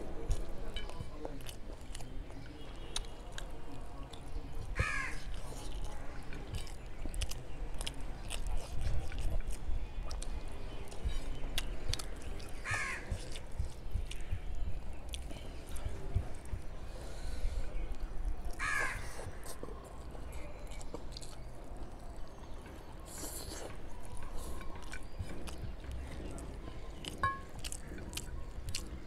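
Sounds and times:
faint eating clicks: 0.0s - 16.8s, 17.6s - 29.0s
bird cawing: 4.8s - 5.2s, 12.6s - 13.1s, 18.6s - 19.1s.

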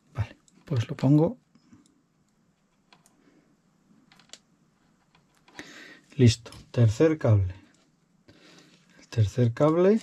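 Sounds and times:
small wires and connector clicking: 1.6s - 3.2s, 4.1s - 5.6s.

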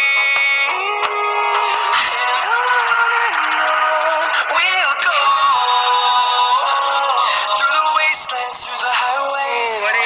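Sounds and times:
song with sung vocals: 0.0s - 10.0s.

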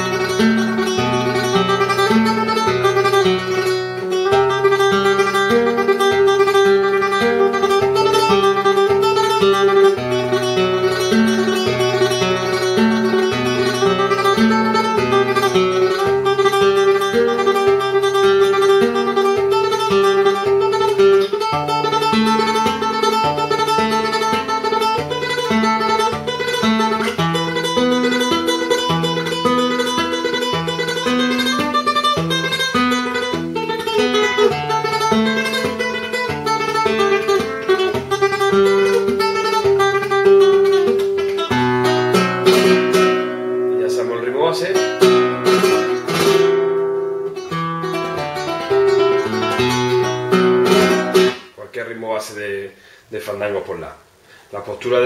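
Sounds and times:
strummed guitar chords: 0.0s - 51.6s
flamenco guitar tremolo: 0.0s - 52.1s.

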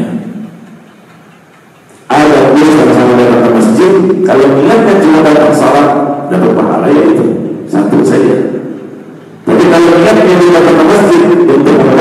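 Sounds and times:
man speaking into a microphone: 0.0s - 0.5s, 2.0s - 12.0s
faint background noise: 0.0s - 12.0s.

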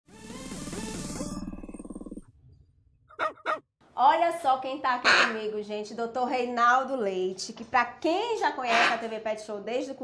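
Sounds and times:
dog barking: 3.1s - 3.6s.

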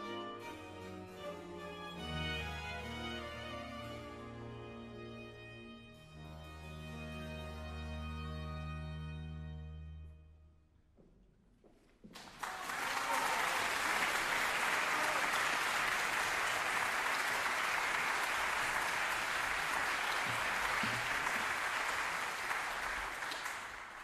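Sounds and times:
audience applauding: 12.1s - 24.0s.

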